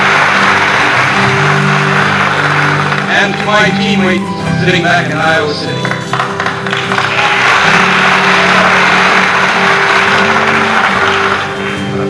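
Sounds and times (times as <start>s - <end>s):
audience applauding: 0.0s - 4.3s, 5.7s - 12.0s
background music: 0.0s - 12.0s.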